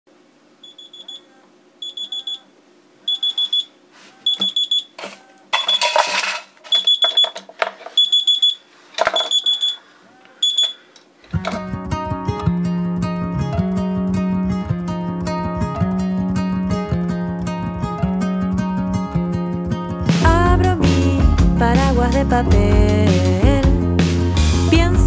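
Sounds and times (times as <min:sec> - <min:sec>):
phone alarm beeping: 0:00.6 - 0:02.5, 0:03.1 - 0:05.9, 0:06.7 - 0:09.8, 0:10.4 - 0:10.9
acoustic guitar music: 0:11.3 - 0:25.0.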